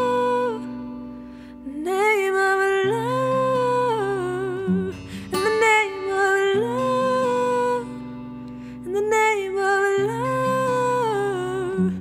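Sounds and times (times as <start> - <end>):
acoustic guitar: 0.0 - 12.0
woman singing wordless melody: 0.0 - 12.0.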